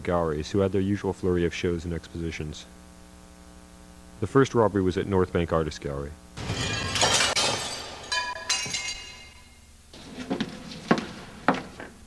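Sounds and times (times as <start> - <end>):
glass pieces clinking: 6.4 - 9.6
glass shattering: 6.4 - 9.6.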